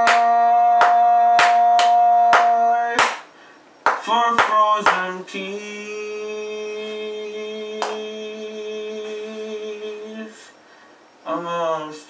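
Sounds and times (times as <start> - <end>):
man singing long note: 0.0 - 3.0.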